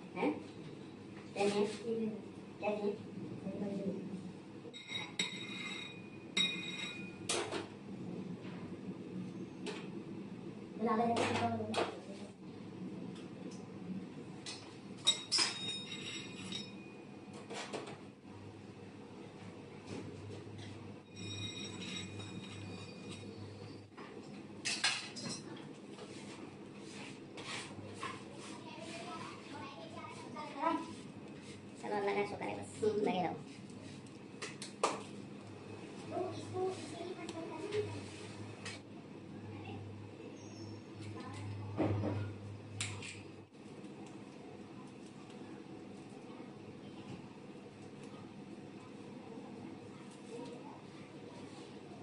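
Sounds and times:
steady low hum: 0.0 - 52.0
metal spatula scraping on metal: 4.8 - 7.1
metal tools clinking on metal: 21.1 - 23.3.

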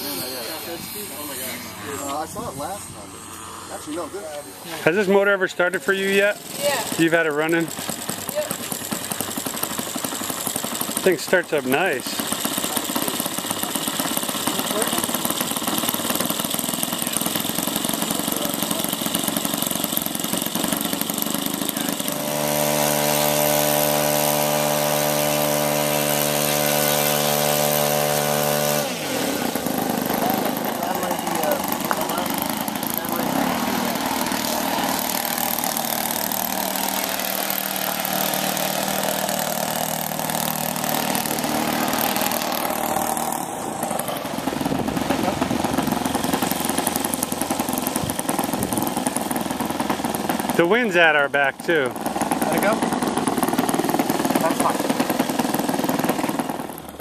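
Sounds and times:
model airplane engine running: 0.0 - 57.0.

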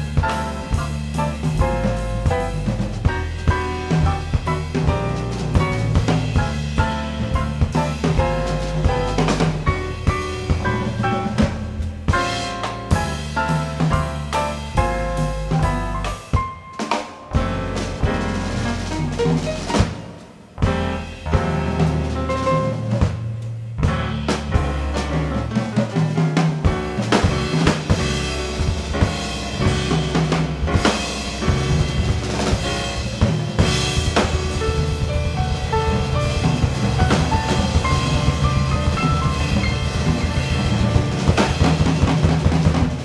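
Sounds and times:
electric bass: 0.0 - 16.4, 17.3 - 43.0
drum kit snare and cymbals: 0.0 - 43.0
piano: 0.0 - 43.0.

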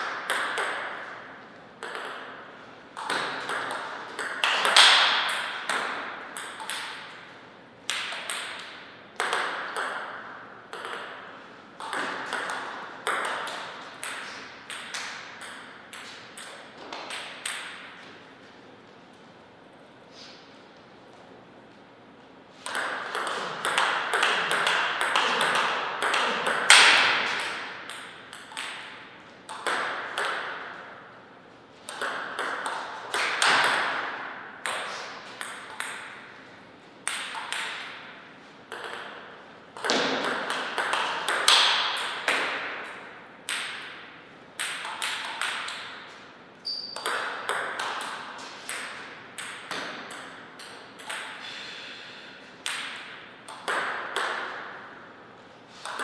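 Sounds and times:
table tennis ball clicking: 10.7 - 11.1, 22.7 - 30.5, 46.7 - 51.4.

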